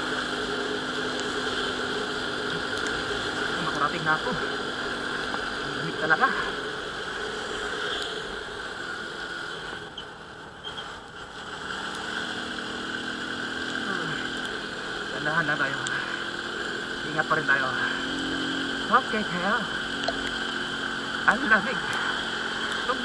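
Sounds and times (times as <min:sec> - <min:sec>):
motorcycle engine cruising: 0:00.0 - 0:23.0.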